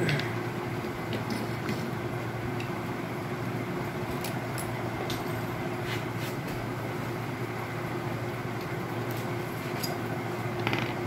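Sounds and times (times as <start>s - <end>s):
workshop hum: 0.0s - 11.0s.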